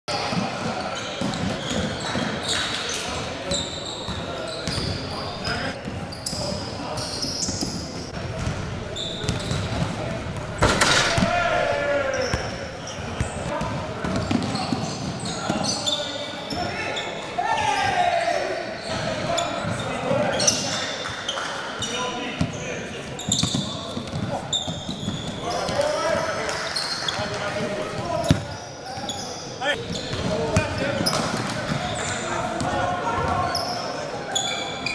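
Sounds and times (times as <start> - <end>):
sneakers squeaking: 0.1 - 34.9
people shouting: 11.0 - 12.4.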